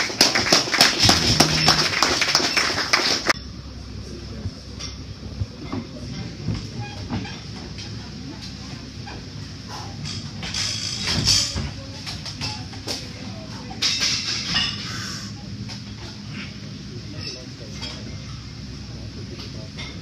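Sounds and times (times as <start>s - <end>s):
people clapping: 0.0s - 3.4s.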